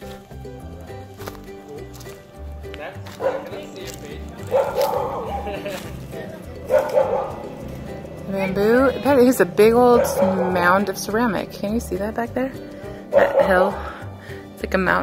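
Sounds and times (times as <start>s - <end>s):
music with bass line: 0.0s - 15.0s.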